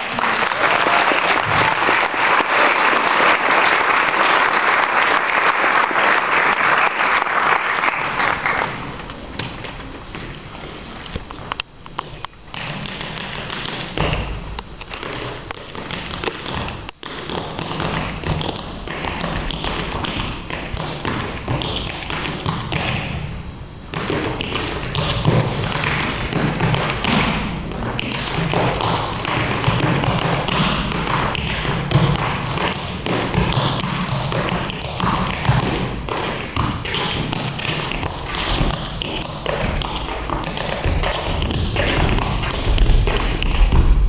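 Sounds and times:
tap shoes on stage floor: 3.6s - 23.3s, 23.9s - 44.0s.

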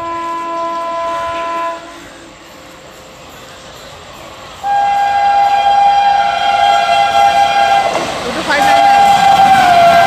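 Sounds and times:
electric locomotive horn blast: 0.0s - 2.0s, 4.6s - 10.0s.

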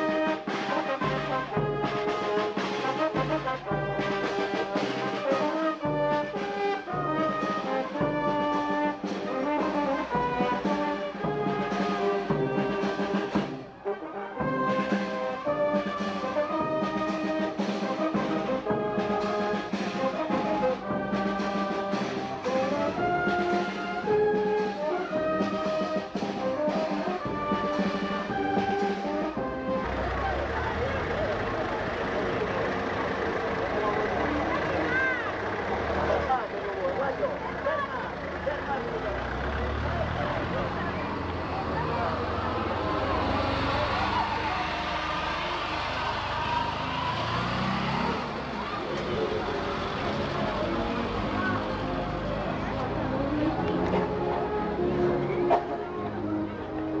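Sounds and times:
brass band playing: 0.0s - 32.7s, 39.5s - 57.0s
crowd murmuring: 0.0s - 57.0s.

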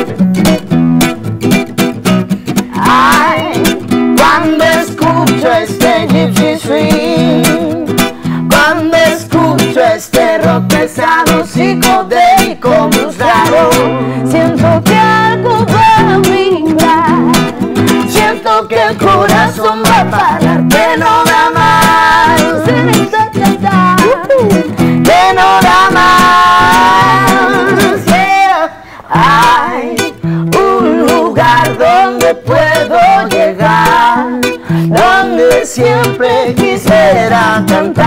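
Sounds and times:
acoustic guitar strummed: 0.0s - 38.0s
guitarist singing: 0.0s - 38.0s
woman singing: 2.6s - 38.0s.

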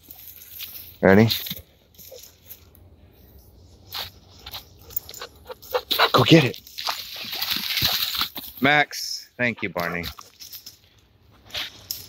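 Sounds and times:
dogs rustling dry leaves: 3.9s - 8.8s.

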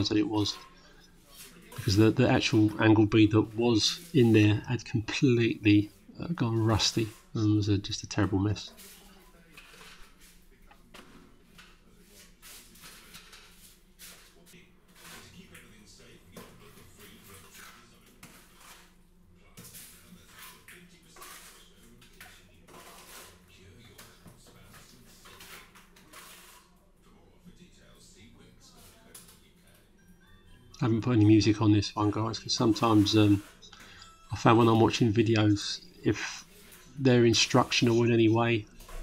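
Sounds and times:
trowel scraping render: 0.0s - 7.5s, 8.2s - 10.4s, 11.0s - 15.4s, 16.5s - 19.0s, 19.6s - 26.8s, 31.0s - 33.8s, 36.2s - 39.0s.

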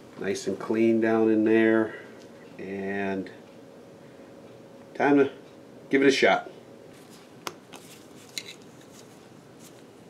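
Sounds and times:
light metal scraping: 7.0s - 9.8s.

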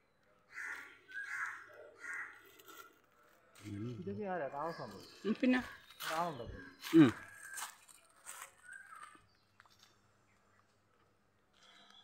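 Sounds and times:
crow cawing: 0.5s - 3.7s.

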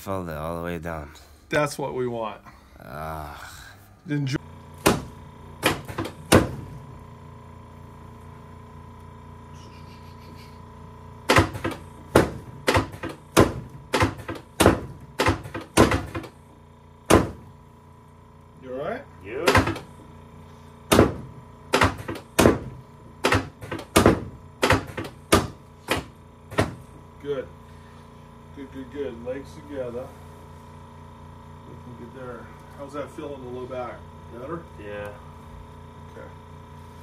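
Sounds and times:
table sections dropping with thuds: 4.8s - 6.7s, 11.3s - 16.3s, 17.1s - 17.4s, 20.9s - 26.8s.

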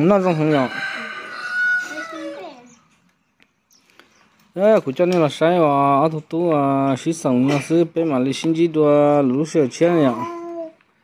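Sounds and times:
rooster crowing: 0.1s - 2.6s.

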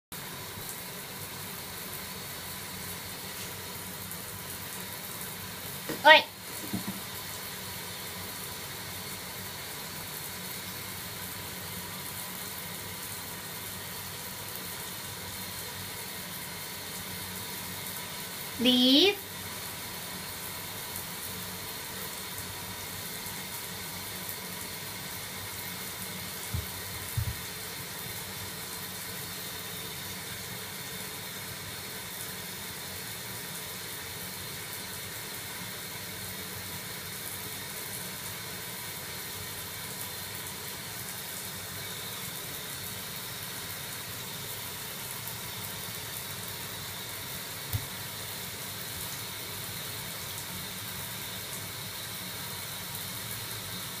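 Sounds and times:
running water in a bathtub: 0.1s - 54.0s.

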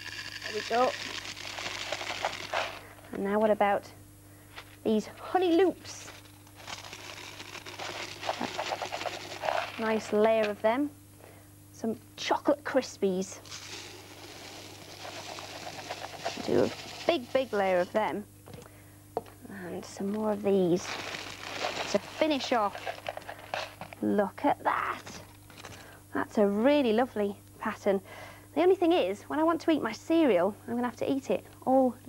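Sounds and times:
cereal rattling into glass jar: 0.0s - 2.9s, 6.1s - 10.2s, 13.4s - 17.9s, 20.8s - 24.0s.

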